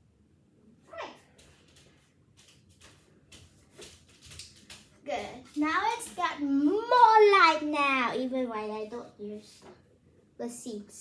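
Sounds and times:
soft light footsteps: 0:01.0 - 0:06.8.

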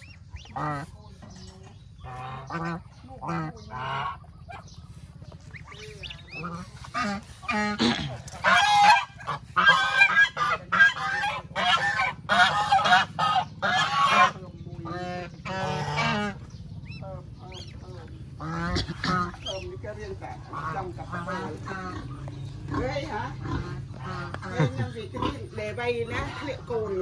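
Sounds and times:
geese honking: 0:00.0 - 0:27.0.

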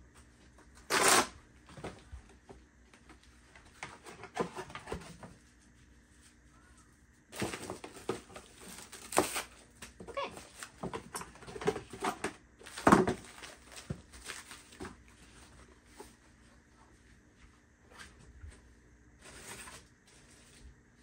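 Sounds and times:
items knocking against shelves: 0:10.0 - 0:14.1
packaging rustling: 0:11.6 - 0:15.1.

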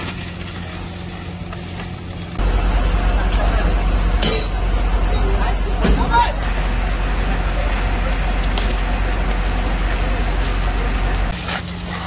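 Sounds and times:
low engine rumble: 0:00.0 - 0:12.0
steady hum: 0:00.0 - 0:12.0.

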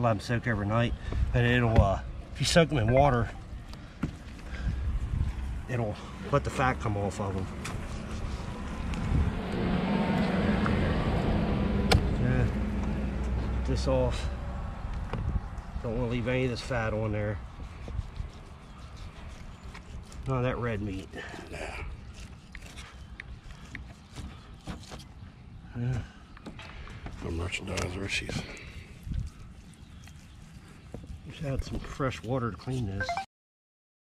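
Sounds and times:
low outdoor rumble: 0:01.4 - 0:23.2.

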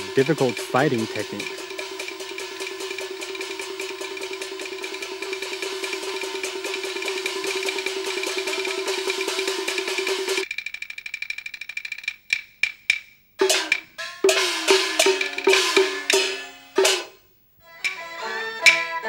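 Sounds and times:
rapid percussion roll: 0:00.0 - 0:17.1.

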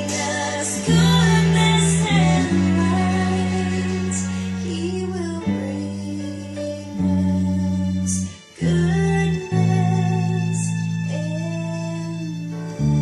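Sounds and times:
backing music: 0:00.0 - 0:13.0
electric bass guitar: 0:00.0 - 0:13.0.

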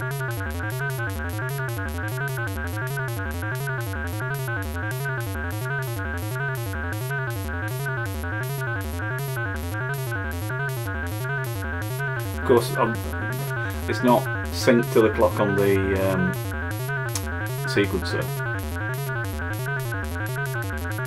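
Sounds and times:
synthesizer sequence with filter sweep: 0:00.0 - 0:21.0.

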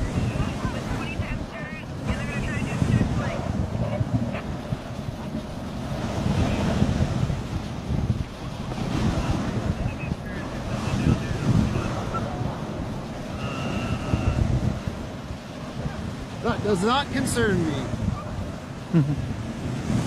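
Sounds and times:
wind buffeting microphone: 0:00.0 - 0:20.0
faint high whines: 0:13.2 - 0:14.4.

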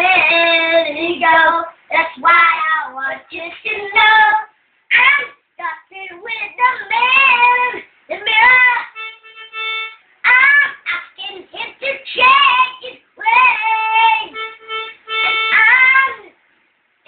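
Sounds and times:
young children singing: 0:10.3 - 0:14.4, 0:15.1 - 0:16.3.

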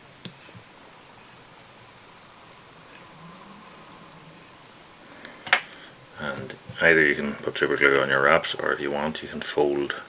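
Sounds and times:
fingers rustling thread and hair: 0:00.0 - 0:09.9.

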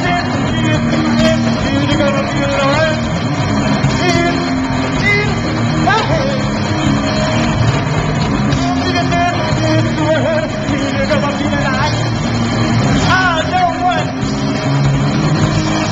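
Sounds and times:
live band playing heavy music: 0:00.0 - 0:15.9.

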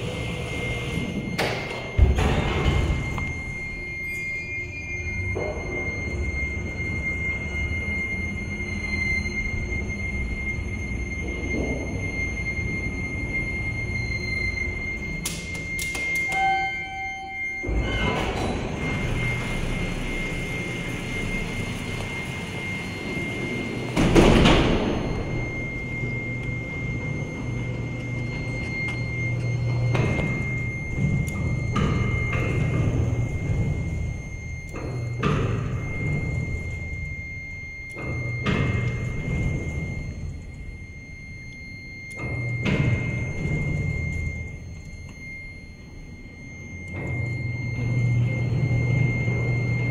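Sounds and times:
elevator doors rumbling: 0:00.0 - 0:44.6, 0:45.8 - 0:49.9
elevator high-pitched hum: 0:00.0 - 0:49.9
low machine hum: 0:00.0 - 0:49.9
short electronic tone: 0:00.0 - 0:49.9
elevator car thud: 0:22.3 - 0:26.0.

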